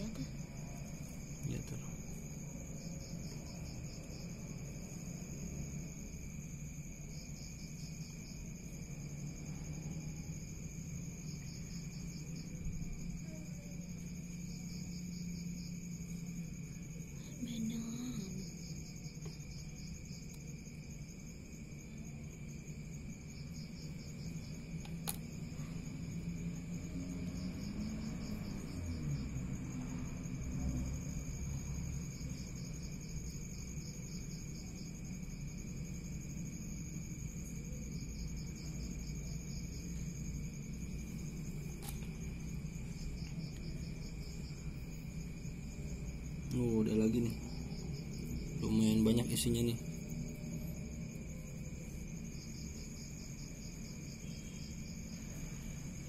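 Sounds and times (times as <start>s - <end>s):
crickets chirping: 0.0s - 56.0s.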